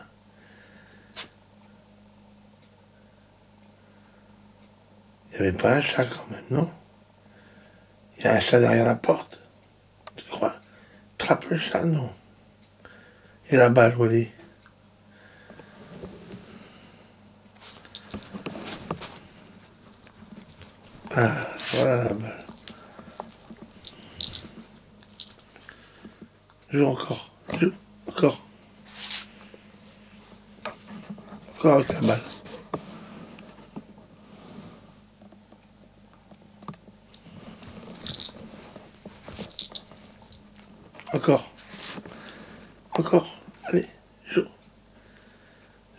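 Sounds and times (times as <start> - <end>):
bedding rustling: 17.6 - 24.6
collar bell jingling: 17.8 - 18.2, 23.8 - 24.5, 25.1 - 25.5, 38.0 - 38.4, 39.5 - 40.5
soft rustling: 37.2 - 41.0.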